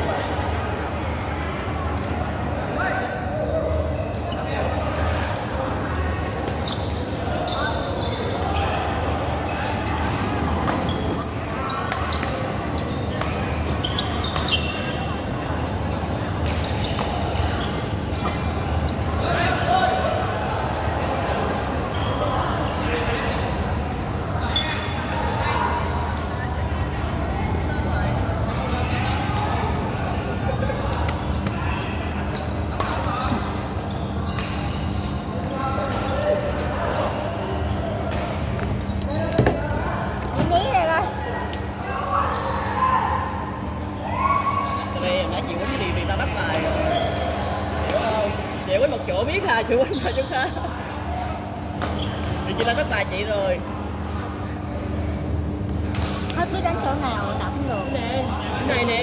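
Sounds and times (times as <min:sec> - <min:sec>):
voices talking in background: 0:00.0 - 0:59.0.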